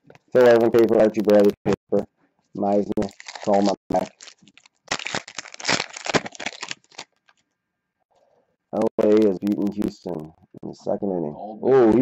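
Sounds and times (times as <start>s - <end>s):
foil wrapper tearing and crinkling: 3.0s - 7.4s.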